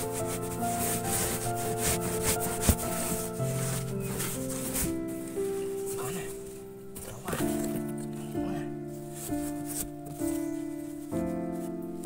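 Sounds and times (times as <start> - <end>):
cardboard box scraping on sandy soil: 0.0 - 5.6.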